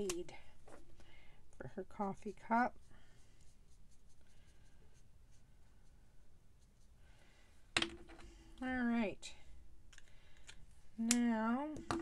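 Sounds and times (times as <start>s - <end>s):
marker scratching on cardstock: 2.2s - 5.5s.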